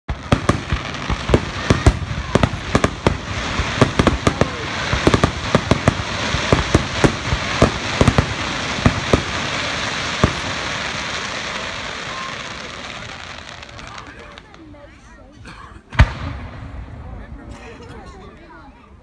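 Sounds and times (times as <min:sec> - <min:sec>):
steady noisy rush: 0:00.1 - 0:12.3
fireworks bangs: 0:00.1 - 0:14.8, 0:15.9 - 0:17.5.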